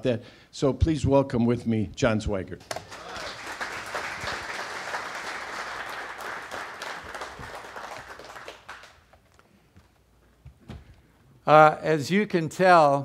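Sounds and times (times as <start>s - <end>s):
audience applauding: 2.8s - 9.2s.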